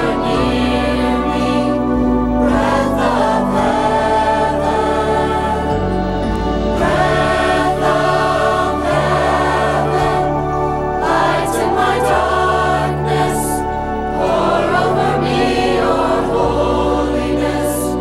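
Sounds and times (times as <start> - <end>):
instrumental accompaniment: 0.0 - 18.0
low bass notes: 0.0 - 18.0
teenage choir singing: 0.0 - 18.0.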